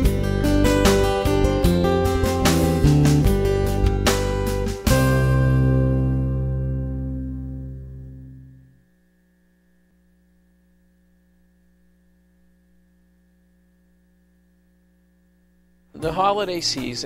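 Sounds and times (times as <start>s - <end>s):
background music: 0.0s - 8.7s, 15.9s - 17.0s
faint mains hum: 5.6s - 17.0s.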